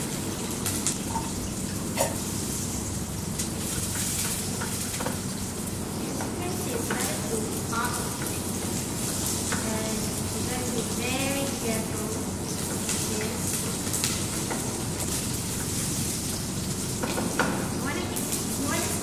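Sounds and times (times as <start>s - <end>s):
shallots sizzling in oil: 0.0s - 19.0s.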